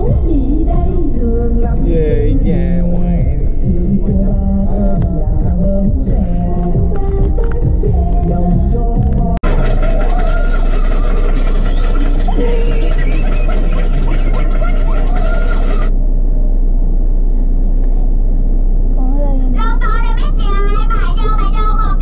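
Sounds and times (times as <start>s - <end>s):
car idling rumble: 0.0s - 22.0s
muffled voices: 1.7s - 5.1s.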